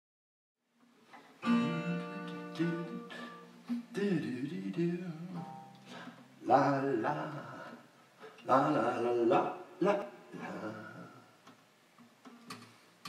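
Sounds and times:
acoustic guitar strumming: 1.4 - 6.4
man's wordless vocal: 2.6 - 11.4.

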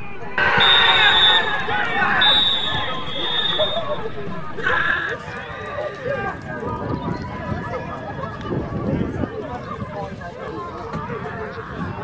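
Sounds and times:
players shouting and cheering: 0.0 - 8.4
babble of voices: 0.0 - 12.0
loud shout: 0.4 - 6.4.

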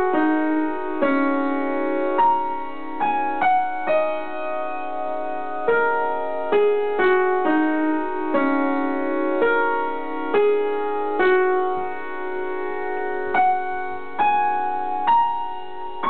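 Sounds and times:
upright piano slow melody: 0.0 - 16.0.

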